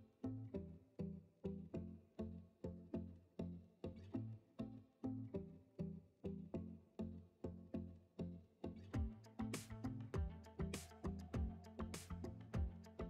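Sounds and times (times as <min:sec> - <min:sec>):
plucked string music: 0:00.0 - 0:13.0.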